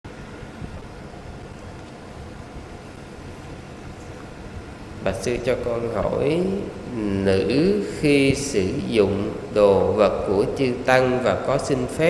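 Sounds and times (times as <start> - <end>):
faint hiss: 0.1 - 12.0.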